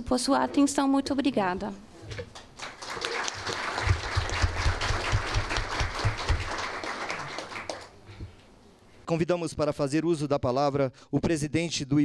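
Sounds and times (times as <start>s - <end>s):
audience applauding: 2.3s - 8.0s.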